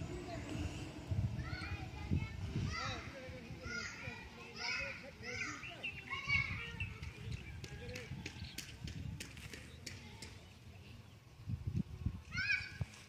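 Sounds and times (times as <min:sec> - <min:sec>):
children calling and chattering: 0:00.0 - 0:13.0.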